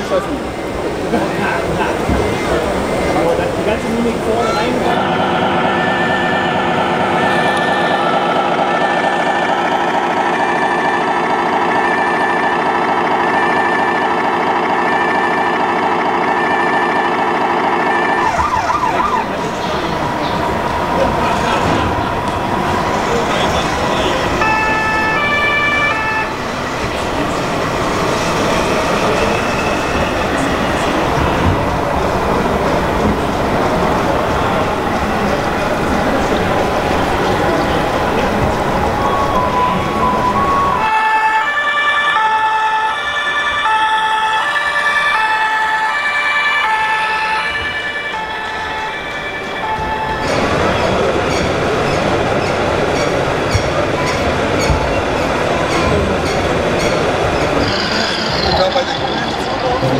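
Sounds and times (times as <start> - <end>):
echoing noise of busy hall: 0.0 - 59.9.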